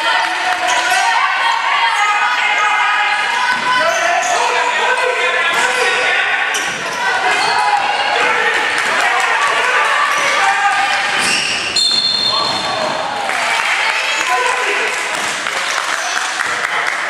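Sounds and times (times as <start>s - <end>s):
shoes squeaking on floor: 11.2s - 12.8s.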